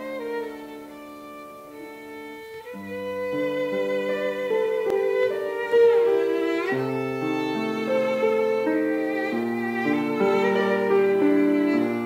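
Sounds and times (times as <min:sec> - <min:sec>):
violin playing long notes: 0:00.0 - 0:12.0.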